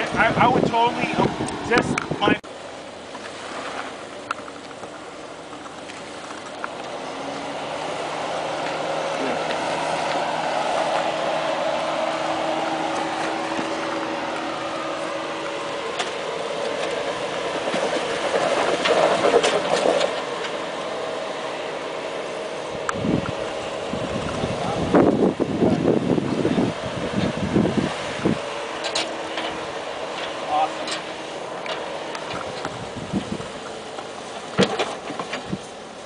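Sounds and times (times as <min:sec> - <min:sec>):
car engine running at low revs: 0:00.0 - 0:36.0
knocks and scrapes against rock: 0:17.6 - 0:20.6.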